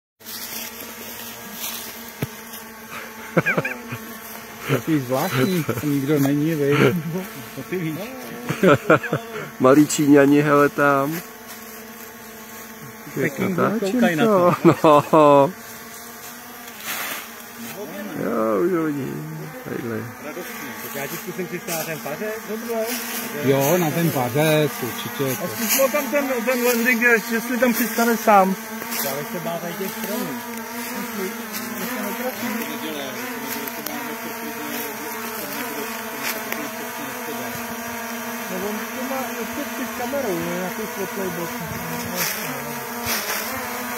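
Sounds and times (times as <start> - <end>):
drone propellers buzzing: 0.3 - 43.9
short hiss: 16.7 - 17.3.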